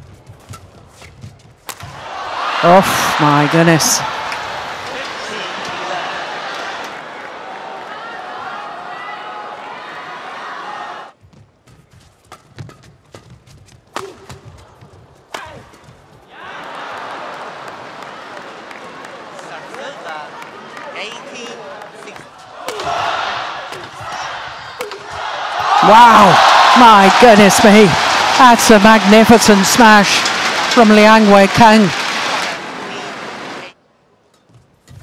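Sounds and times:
crowd cheering and shouting: 0:01.9 - 0:11.1, 0:16.3 - 0:19.6, 0:22.4 - 0:33.0
racket striking shuttlecock: 0:12.3 - 0:14.5, 0:22.6 - 0:23.1, 0:23.7 - 0:25.4.

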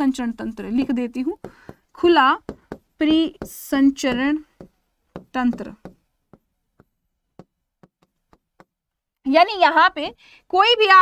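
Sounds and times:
marker pen tapping whiteboard: 0:02.4 - 0:08.8.

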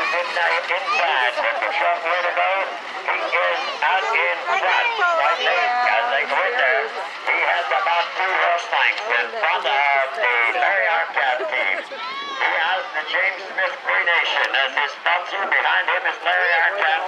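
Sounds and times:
man commentating on a race: 0:00.0 - 0:17.0.

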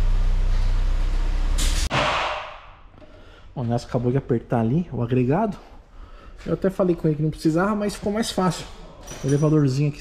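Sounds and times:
pneumatic impact wrench: 0:01.6 - 0:01.9.

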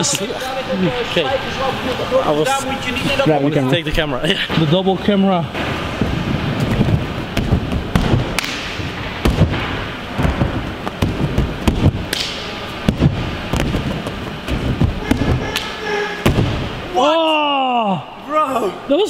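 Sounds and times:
thuds on an inflatable air track: 0:05.6 - 0:12.2, 0:12.8 - 0:16.8.

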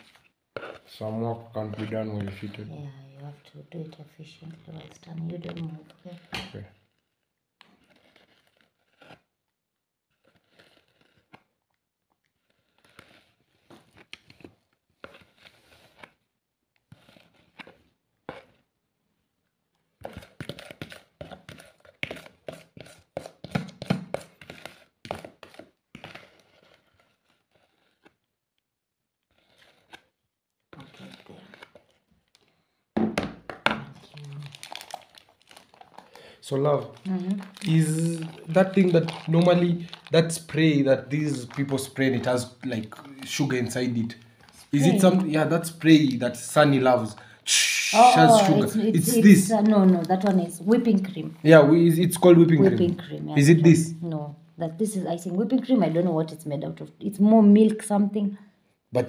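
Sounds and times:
spoon scraping in plastic bowl: 0:00.0 - 0:02.7, 0:07.7 - 0:09.2, 0:16.9 - 0:18.6, 0:20.0 - 0:28.2, 0:36.8 - 0:40.1
plastic bag crinkling: 0:33.9 - 0:45.8, 0:48.9 - 0:51.5.

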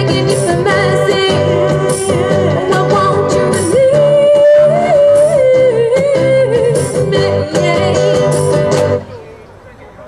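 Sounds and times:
strummed acoustic guitars: 0:00.0 - 0:09.3.

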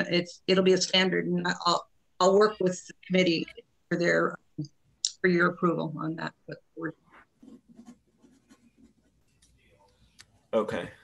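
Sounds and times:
faint scratching of writing: 0:06.9 - 0:10.6.

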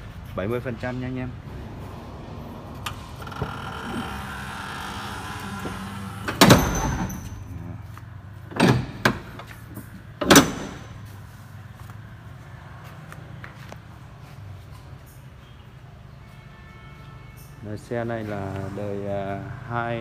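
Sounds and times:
truck door slamming: 0:05.4 - 0:07.5, 0:08.5 - 0:11.0.

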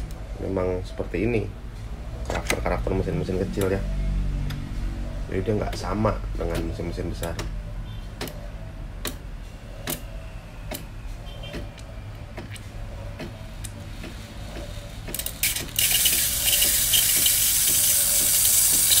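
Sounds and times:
espresso machine humming: 0:15.8 - 0:19.0.

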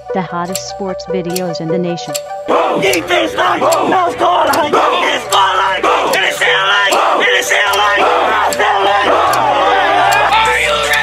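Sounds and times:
music with steady beat: 0:00.0 - 0:11.0
young men shouting and chanting: 0:02.4 - 0:11.0.

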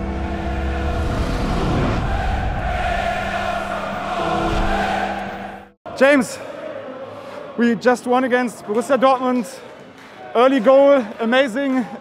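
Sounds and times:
rushing sound effect: 0:00.0 - 0:05.8.

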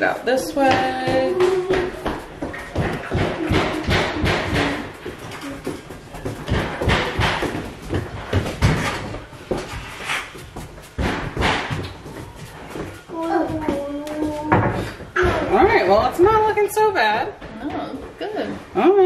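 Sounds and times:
knocks and thumps: 0:00.4 - 0:18.2.

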